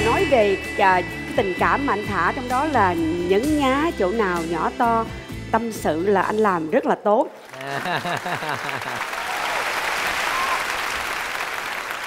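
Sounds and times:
audience applauding: 7.4 - 12.0
person laughing: 7.6 - 9.0.

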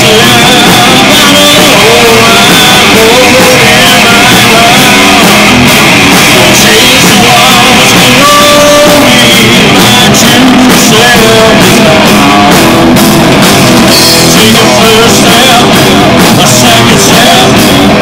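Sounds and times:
person singing into microphone: 0.0 - 12.8, 14.0 - 18.0
drum kit: 0.0 - 18.0
electric guitar: 0.0 - 18.0.

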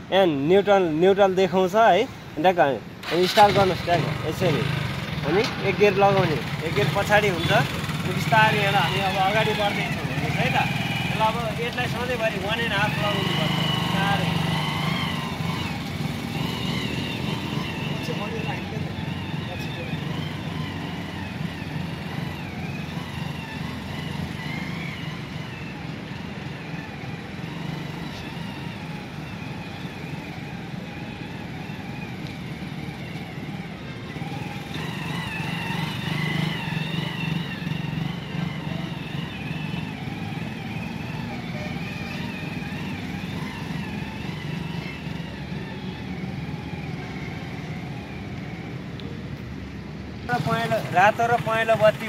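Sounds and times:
small motorcycle engine running: 3.0 - 52.0.

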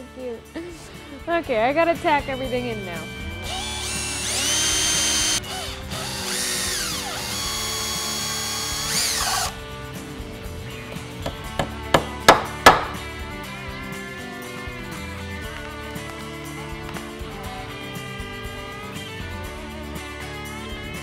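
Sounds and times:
cordless drill whining: 3.4 - 9.6
hammer tapping nails into wood: 11.2 - 13.0.

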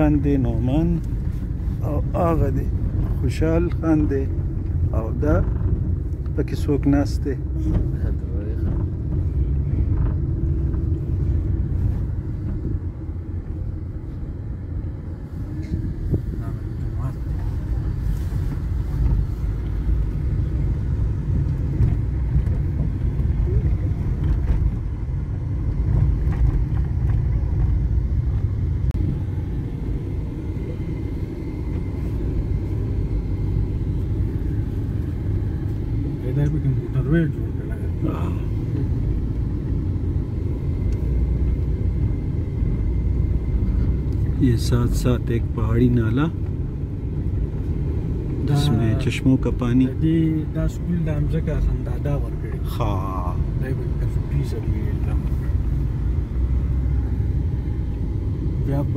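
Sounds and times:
car driving on dirt road: 0.0 - 58.9.

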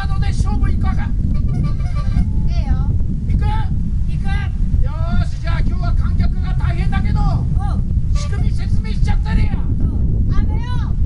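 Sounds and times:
heavy rain: 0.0 - 11.0
voices talking: 0.0 - 11.0
wind rumble on microphone: 0.0 - 11.0.

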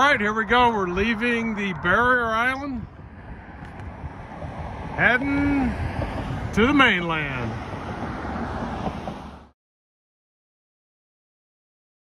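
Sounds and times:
low rumble: 0.0 - 6.6
wind on microphone: 0.0 - 9.4.

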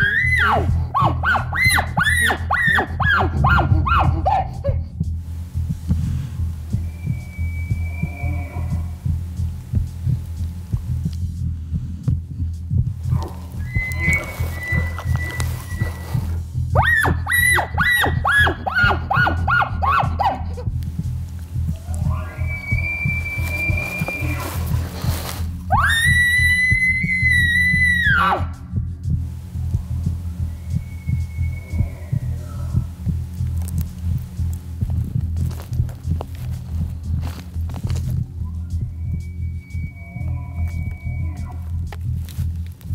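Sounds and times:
elk bugling: 0.0 - 42.9
low throbbing beat: 0.0 - 42.9.

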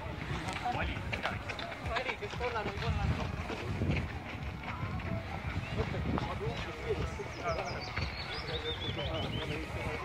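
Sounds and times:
runners' footfalls on dirt: 0.0 - 10.0
people talking: 4.8 - 10.0.

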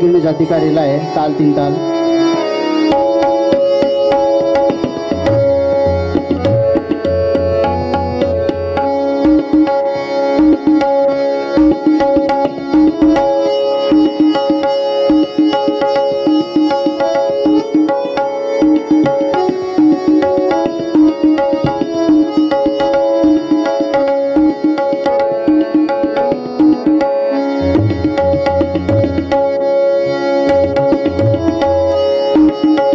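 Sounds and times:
harmonium melody: 0.0 - 32.9
tabla strokes: 2.3 - 32.9.

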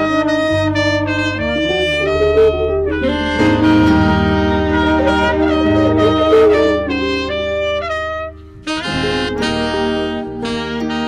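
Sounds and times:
low steady accompaniment: 0.0 - 11.0
tenor saxophone and trumpet melody: 0.0 - 11.0.

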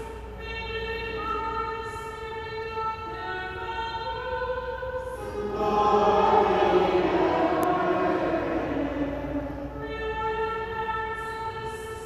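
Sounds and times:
choir singing a hymn: 5.2 - 11.3.

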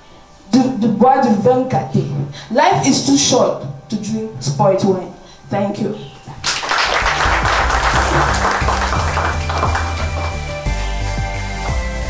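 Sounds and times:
applause: 6.4 - 10.6
music with steady bass line: 6.9 - 12.0.

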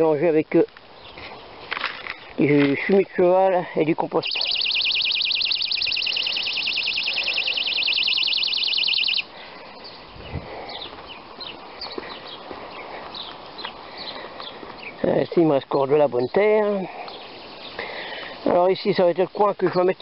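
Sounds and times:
bird trilling: 4.2 - 10.1
faint bird chirps: 4.2 - 15.0.

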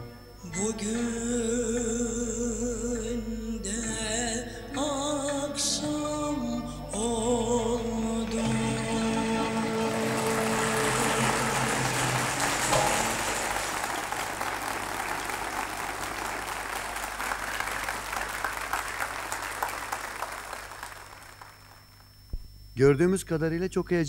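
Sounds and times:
music held notes: 0.0 - 21.4
audience applauding: 8.7 - 22.0.

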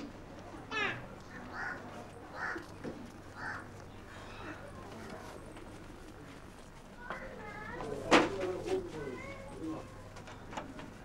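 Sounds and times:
crows cawing: 0.7 - 2.7, 3.4 - 4.3.

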